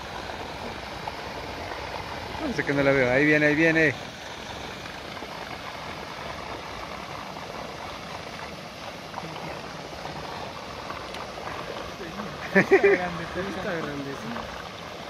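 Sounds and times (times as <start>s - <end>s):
water gushing into pond: 0.0s - 15.0s.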